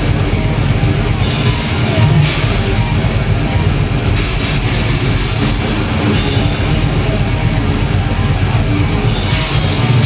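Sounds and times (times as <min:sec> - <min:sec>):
bass guitar: 0:00.0 - 0:10.0
distorted electric guitars: 0:00.0 - 0:10.0
fast drumming: 0:00.0 - 0:10.0.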